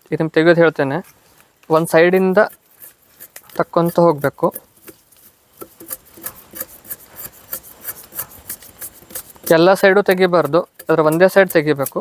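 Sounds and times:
knife scraping bark: 0:00.9 - 0:12.0.

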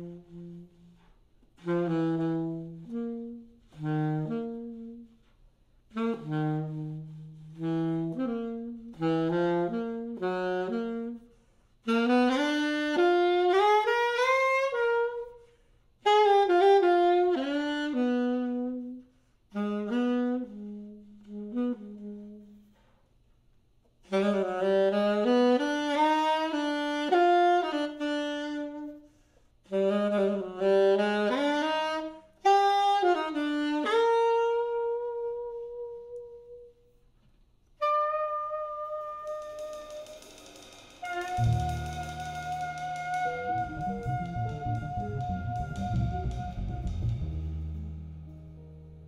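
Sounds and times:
jazz saxophone solo: 0:00.0 - 0:49.0.

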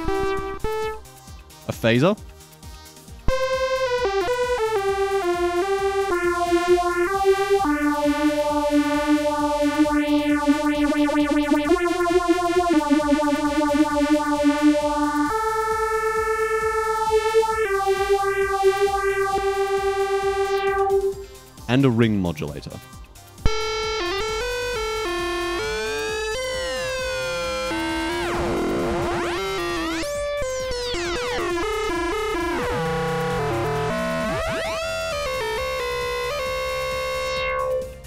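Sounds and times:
synthesizer notes with phaser: 0:00.0 - 0:01.3, 0:03.0 - 0:21.7, 0:23.3 - 0:38.0.

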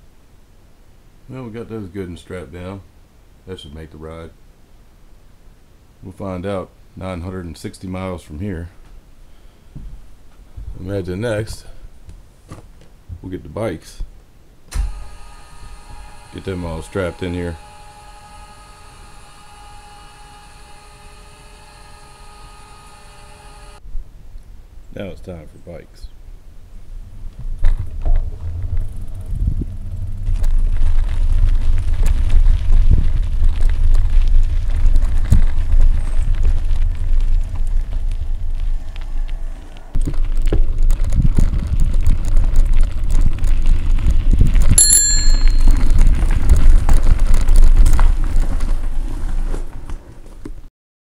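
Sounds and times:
wind buffeting microphone: 0:26.9 - 0:48.8
bicycle bell ringing: 0:44.8 - 0:46.2.

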